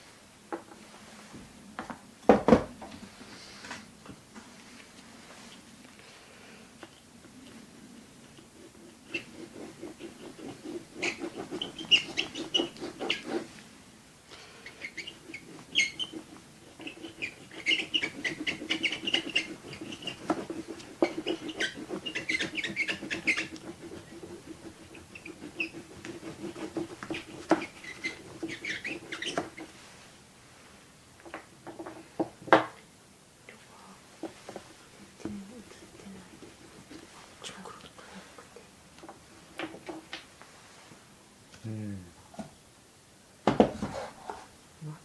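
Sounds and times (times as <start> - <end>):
oil pastel scratching paper: 8.3 - 13.6, 14.6 - 29.9, 35.5 - 37.4.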